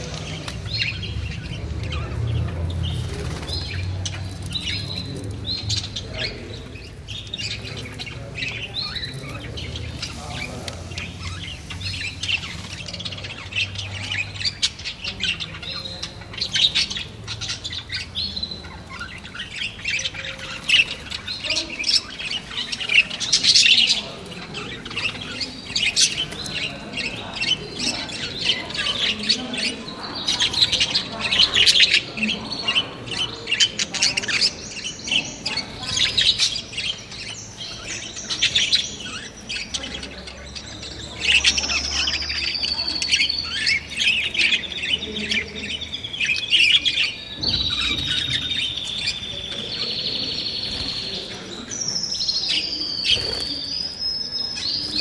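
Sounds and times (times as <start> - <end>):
budgerigars chattering: 0.0 - 55.0.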